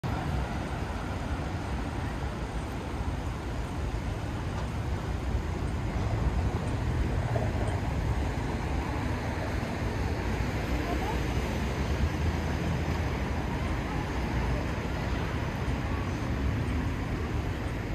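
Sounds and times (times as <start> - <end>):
low rumble of road traffic: 0.0 - 17.9.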